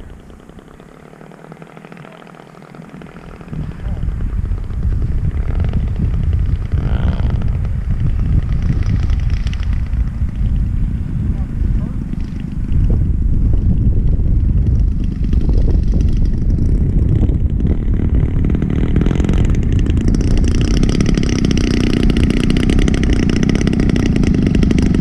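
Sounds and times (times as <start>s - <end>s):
model plane engine and propeller: 0.0s - 25.0s.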